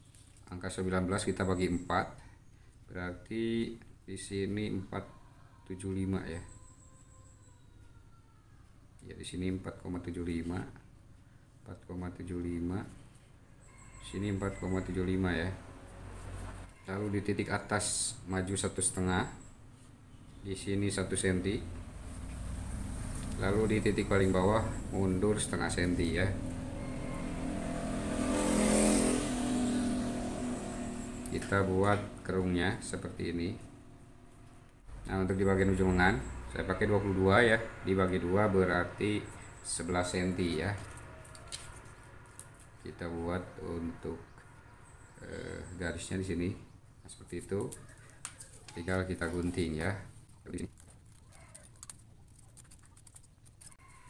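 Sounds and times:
vehicle engine passing: 0:14.0 - 0:19.0, 0:20.5 - 0:46.8, 0:48.7 - 0:50.6
paper rustling: 0:48.0 - 0:53.8
scissors cutting paper: 0:50.4 - 0:53.8.

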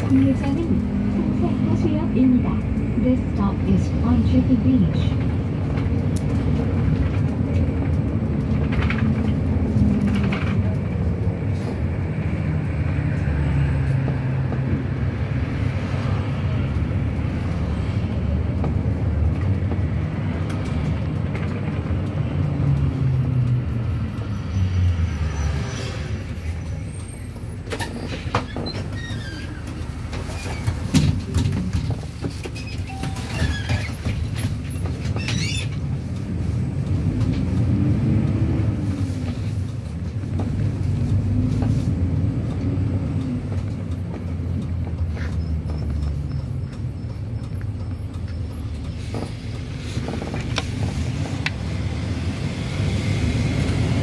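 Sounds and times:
bus engine running: 0:00.0 - 0:54.0
rattles and clicks: 0:05.0 - 0:11.7, 0:27.6 - 0:51.8.

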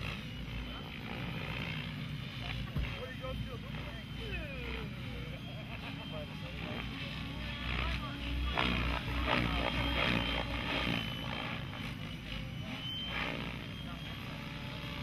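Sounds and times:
model helicopter rotor whine: 0:00.0 - 0:15.0.

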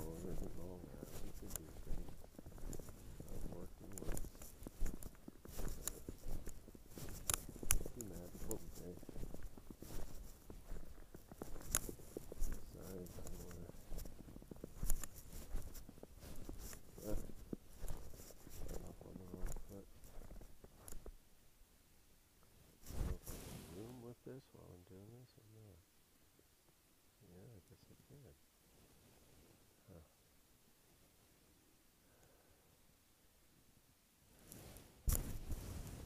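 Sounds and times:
low indistinct voice: 0:00.0 - 0:02.0, 0:03.2 - 0:04.3, 0:07.8 - 0:09.1, 0:18.8 - 0:19.9
rustles: 0:00.0 - 0:21.4, 0:22.4 - 0:26.8, 0:27.5 - 0:32.5, 0:34.2 - 0:36.0.

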